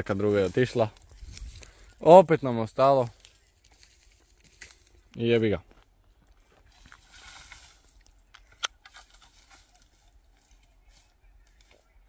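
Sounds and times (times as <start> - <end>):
branches and twigs rustling: 0.0 - 12.0
twig snapping: 3.2 - 5.2.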